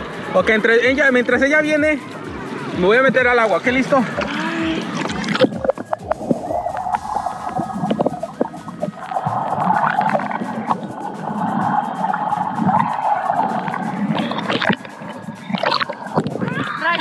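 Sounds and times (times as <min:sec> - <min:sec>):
sharp water splashes: 0:00.0 - 0:17.0
underwater gurgling rumble: 0:02.6 - 0:17.0.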